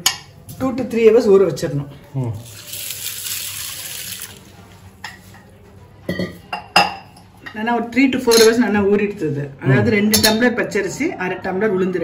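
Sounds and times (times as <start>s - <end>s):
water pouring onto rice: 2.4s - 4.7s.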